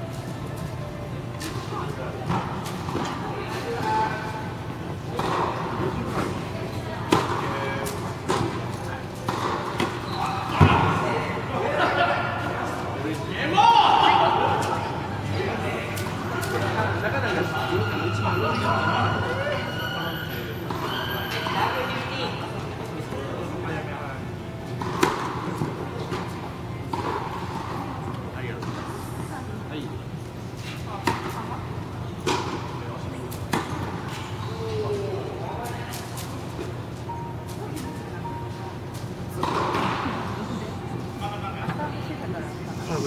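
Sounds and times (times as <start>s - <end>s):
hall background noise: 0.0s - 43.0s
voices: 0.7s - 43.0s
tennis balls bouncing and hit: 5.1s - 6.4s, 7.1s - 11.0s, 24.7s - 27.8s, 28.6s - 28.9s, 30.6s - 34.4s, 38.9s - 40.5s
people talking: 5.1s - 24.2s.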